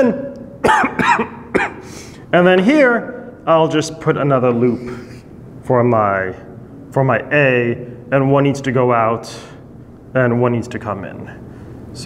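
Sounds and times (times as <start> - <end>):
man coughing: 0.6 - 2.0.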